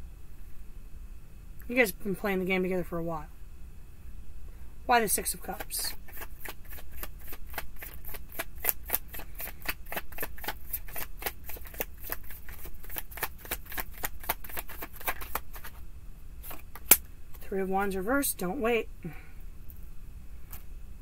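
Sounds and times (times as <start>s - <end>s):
cards being shuffled: 5.5s - 15.8s, 16.4s - 17.4s.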